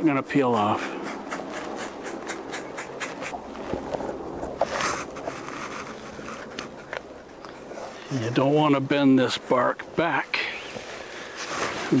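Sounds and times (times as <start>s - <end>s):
bark scraping and rasping: 1.3s - 8.2s.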